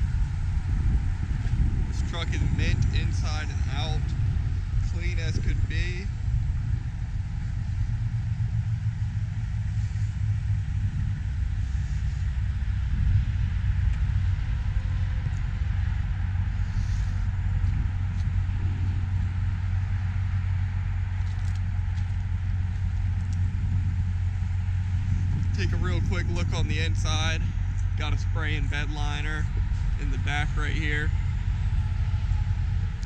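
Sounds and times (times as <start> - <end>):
truck engine idling: 0.0 - 33.0.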